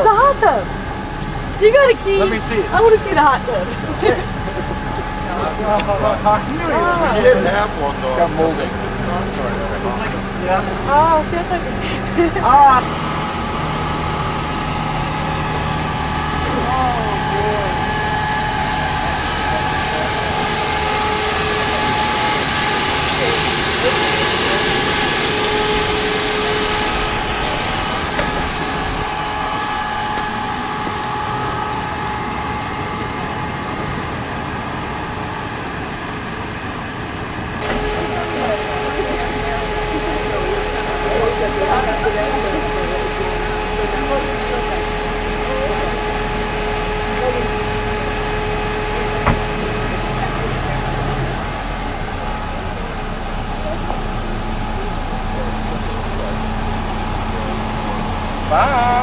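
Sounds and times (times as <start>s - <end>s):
vehicle engine idling: 0.0s - 59.0s
faint indistinct voices: 37.6s - 59.0s.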